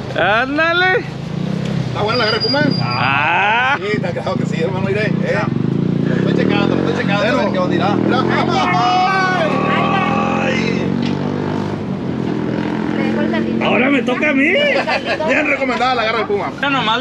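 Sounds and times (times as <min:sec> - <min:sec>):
people's voices: 0:02.0 - 0:11.3, 0:12.6 - 0:17.0
long drawn-out exclamation: 0:02.7 - 0:04.0, 0:06.7 - 0:11.0.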